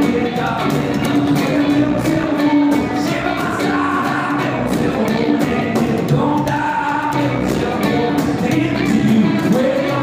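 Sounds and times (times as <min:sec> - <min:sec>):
man singing into a microphone: 0:00.0 - 0:10.0
strummed acoustic guitar: 0:00.0 - 0:10.0.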